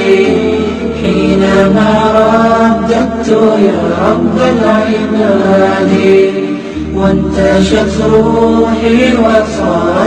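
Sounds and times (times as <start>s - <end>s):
melodic vocal chanting: 0.0s - 10.0s.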